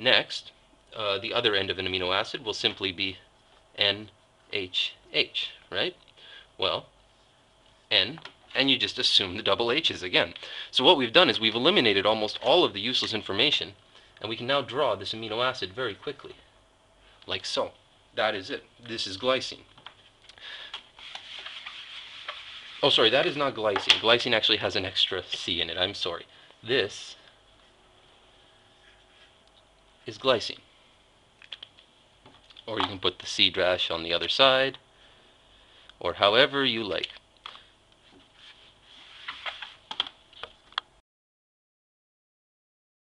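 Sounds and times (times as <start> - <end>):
eraser rubbing on whiteboard: 21.0 - 23.2.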